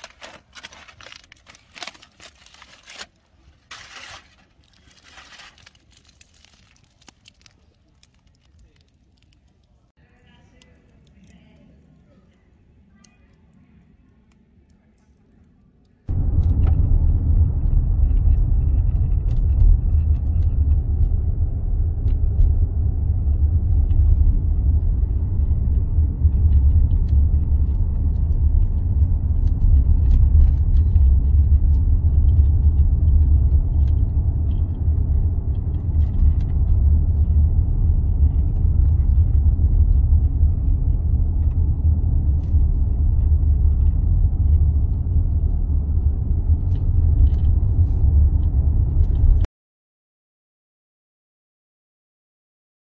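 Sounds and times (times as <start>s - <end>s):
car driving rumble inside cabin: 16.1s - 49.5s.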